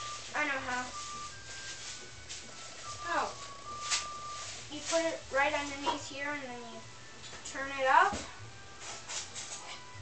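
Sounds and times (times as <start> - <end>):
faint steady held tones: 0.0 - 8.8.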